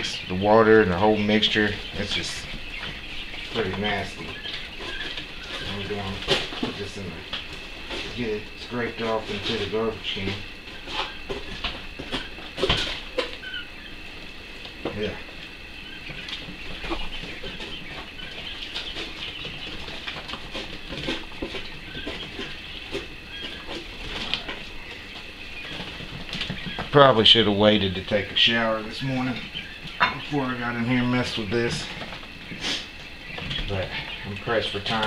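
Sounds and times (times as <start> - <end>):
quail chicks peeping: 0.0 - 35.0.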